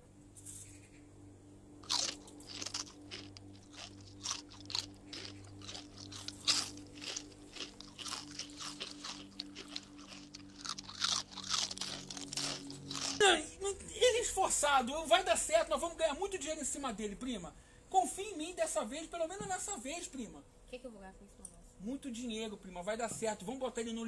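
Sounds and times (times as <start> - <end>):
person crunching food: 1.8 - 13.4.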